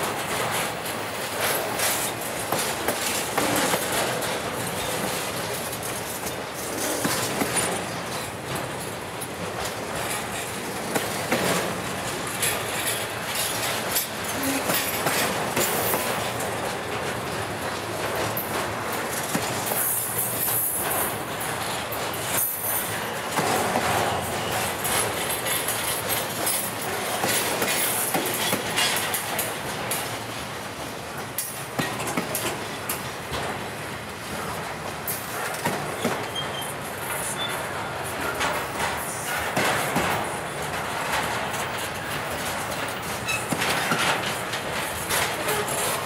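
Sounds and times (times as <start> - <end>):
train wheels rumbling on rail: 0.0 - 46.0
wheels clicking over rail joints: 0.0 - 46.0
high wheel squeals: 36.0 - 37.6.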